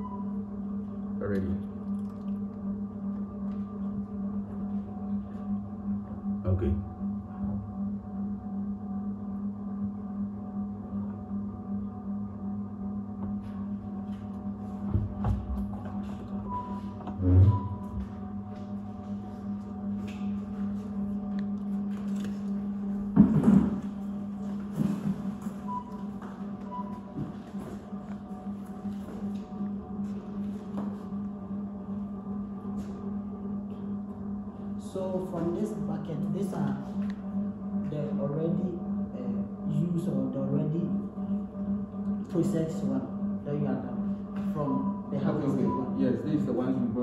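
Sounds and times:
low machine hum: 0.0 - 47.0.

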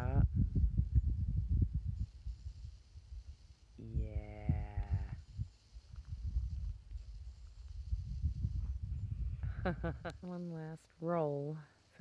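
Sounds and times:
low wind rumble on microphone: 0.0 - 10.3.

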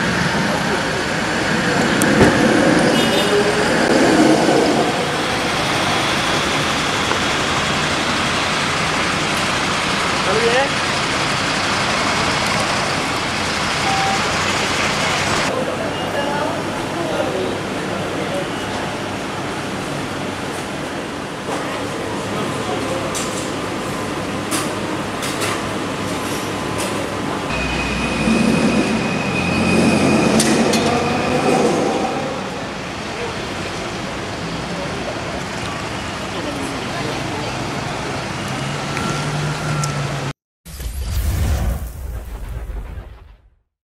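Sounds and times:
train passing rumble: 0.0 - 15.8
road traffic noise: 0.0 - 40.4
high whine: 27.4 - 31.3
short single tone: 27.5 - 30.0.

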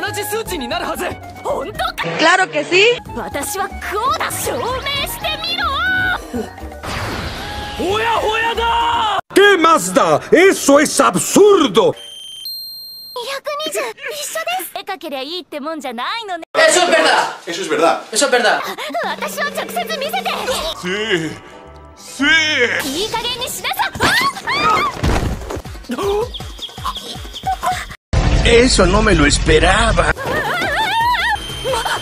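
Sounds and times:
smartwatch electronic beeping: 12.0 - 13.2, 31.3 - 32.0
high blips: 18.6 - 21.9.

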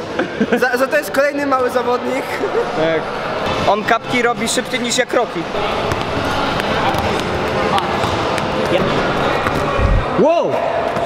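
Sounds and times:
voices in a large hall: 0.0 - 11.0
footballs kicked and bouncing: 5.5 - 10.0.

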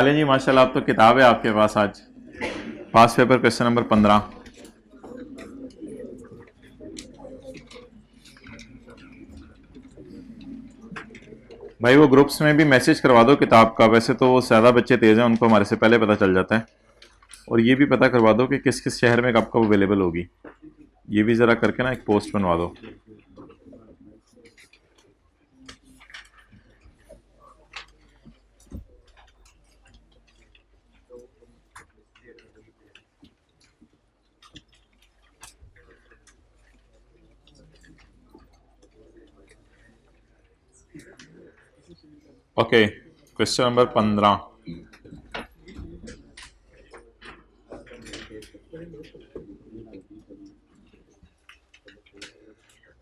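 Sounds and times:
murmur of voices: 0.0 - 53.0.

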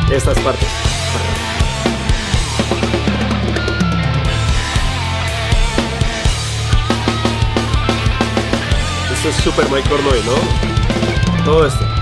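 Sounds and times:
heavy band recording: 0.0 - 12.0
rock drum kit playing: 0.0 - 12.0.

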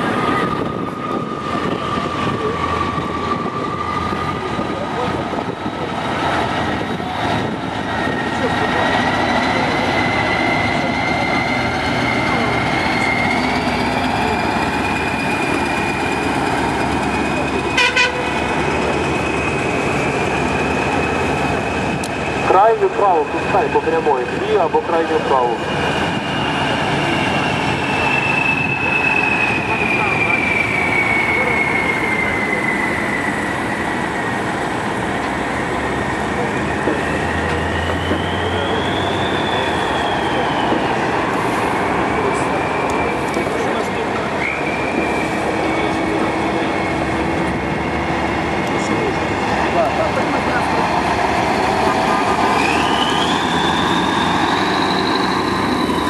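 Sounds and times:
truck diesel engines: 0.0 - 56.0.

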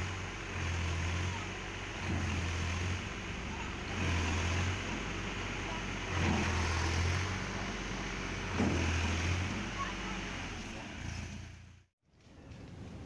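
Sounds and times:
sand sliding off trailer: 0.0 - 11.8
tractor diesel engine revving: 0.0 - 11.9.

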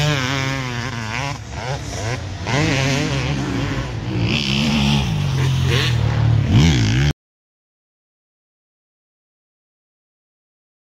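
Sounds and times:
motocross bike engines revving: 0.0 - 7.2.

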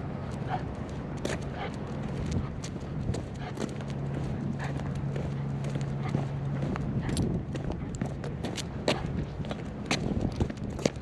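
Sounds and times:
low hum: 0.0 - 11.0
footsteps on stone paving: 0.2 - 11.0.

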